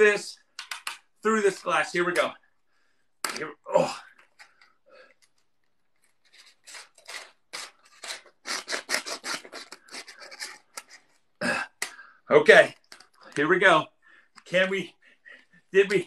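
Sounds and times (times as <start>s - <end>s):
pencil scratching on playing card: 6.4s - 11.0s.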